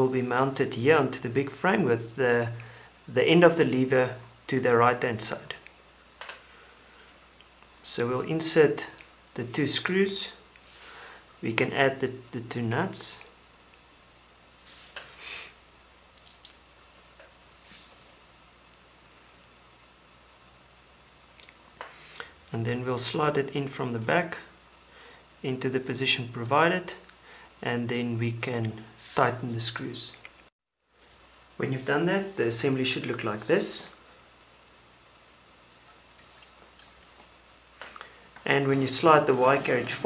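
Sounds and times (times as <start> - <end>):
faint clicks of handling parts: 8.8 - 9.4, 16.1 - 19.6
hand rustling over surface: 14.5 - 15.2, 38.3 - 40.0
small screws clicking: 16.2 - 16.6.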